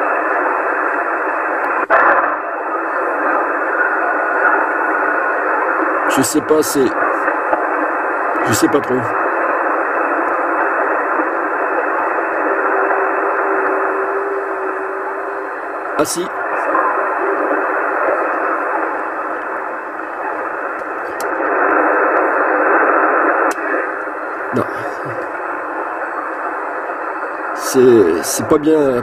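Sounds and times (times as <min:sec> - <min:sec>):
radio static hiss: 0:00.0 - 0:29.0
garbled distant radio voice: 0:06.0 - 0:22.6, 0:23.5 - 0:25.4.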